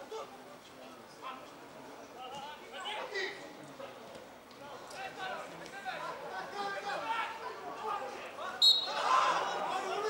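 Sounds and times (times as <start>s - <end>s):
referee whistle blast: 8.6s - 9.0s.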